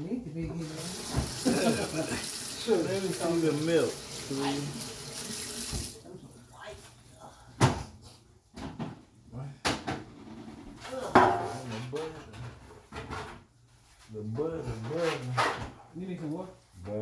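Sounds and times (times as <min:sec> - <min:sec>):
kitchen doors knocking and clattering: 0:00.5 - 0:02.2, 0:07.6 - 0:07.9, 0:08.5 - 0:13.5.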